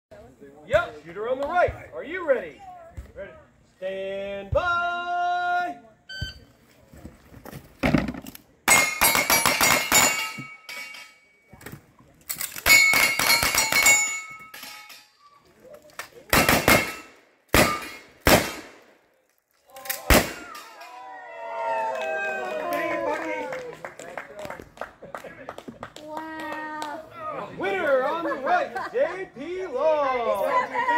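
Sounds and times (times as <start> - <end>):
metallic clang of steel targets: 8.7 - 11.5, 12.4 - 15.2, 16.4 - 18.6
gunshots: 16.3 - 18.9, 20.0 - 20.6.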